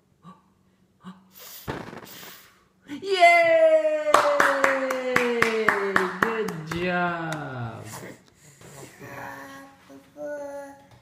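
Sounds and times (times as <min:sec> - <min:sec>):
person cheering yay: 0:02.9 - 0:07.8
hand clapping: 0:04.1 - 0:07.6.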